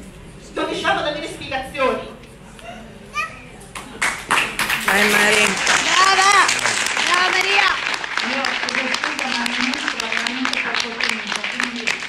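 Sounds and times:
room full of people: 0.0s - 12.0s
small child's high voice: 3.1s - 3.5s.

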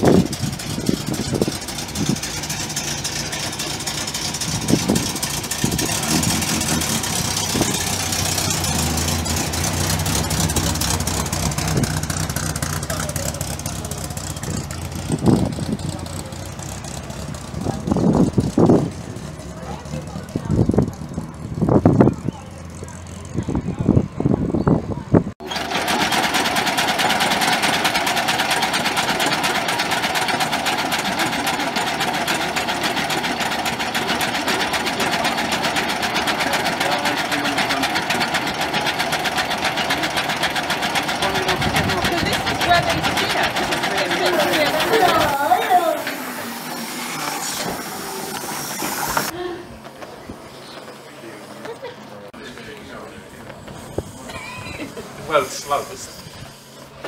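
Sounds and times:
old engine clattering: 0.0s - 23.9s, 25.4s - 51.0s
car engine pulling away: 0.0s - 24.8s, 25.4s - 55.7s.

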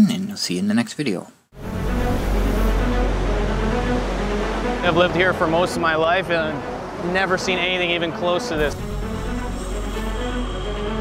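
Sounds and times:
background music: 1.5s - 11.0s
fast-flowing river rushing: 1.7s - 11.0s.

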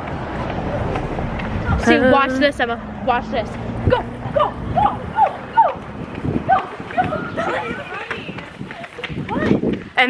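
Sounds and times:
running footsteps on pavement: 0.0s - 10.0s
excited voices calling out: 1.7s - 9.7s.

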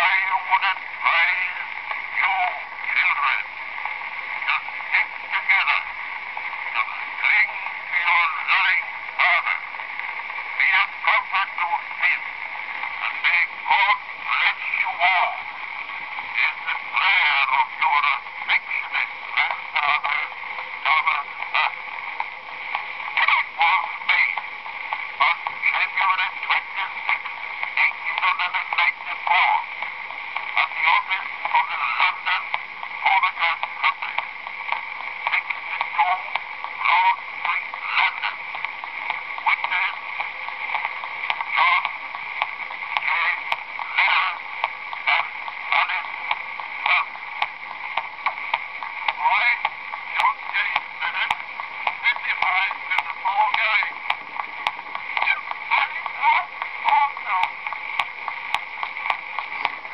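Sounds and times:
tinny phonograph voice: 0.0s - 59.9s.

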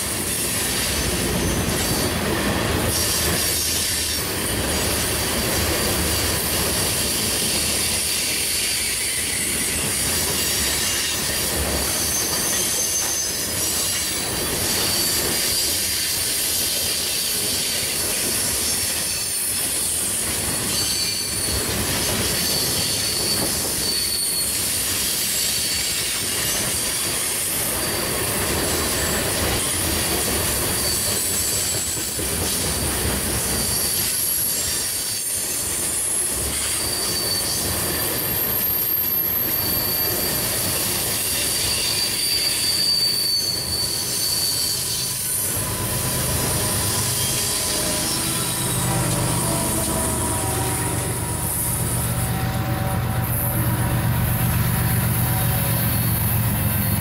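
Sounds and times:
freight train rolling past: 0.0s - 57.0s
high-pitched wheel squeal: 5.8s - 17.7s, 20.6s - 26.8s, 30.5s - 32.2s, 33.5s - 57.0s
diesel locomotive rumble: 44.8s - 57.0s.

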